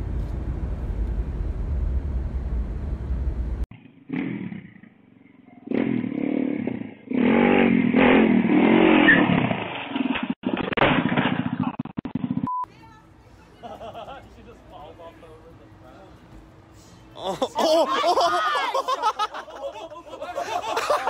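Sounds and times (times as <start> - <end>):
dirt bike engine revving: 3.7 - 9.7.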